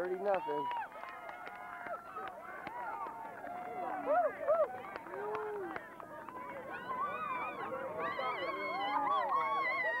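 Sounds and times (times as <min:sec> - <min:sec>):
children's voices chattering: 0:03.8 - 0:10.0.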